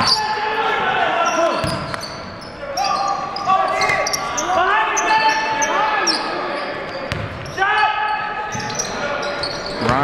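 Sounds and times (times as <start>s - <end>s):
sneakers squeaking on gym floor: 0.0s - 0.4s, 1.2s - 10.0s
voices of players and crowd: 0.0s - 10.0s.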